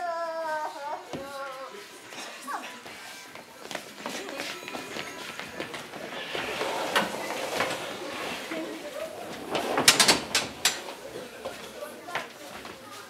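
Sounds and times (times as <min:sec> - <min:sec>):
low murmured voices: 0:00.0 - 0:13.0
footsteps on wooden stage: 0:02.8 - 0:06.6
desks being pushed: 0:05.4 - 0:11.8.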